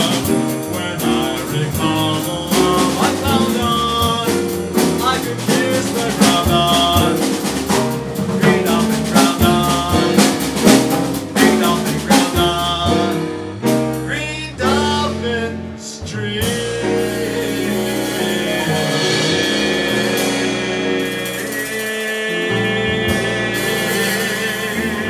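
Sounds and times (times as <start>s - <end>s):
man singing: 0.0s - 7.6s, 8.4s - 10.6s, 11.4s - 13.3s, 14.0s - 25.0s
drum kit: 0.0s - 25.0s
piano: 0.0s - 25.0s
upright bass: 0.0s - 25.0s.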